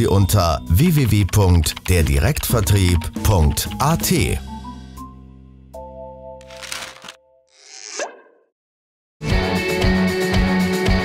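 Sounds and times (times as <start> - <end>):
jingle music: 0.0 - 6.3.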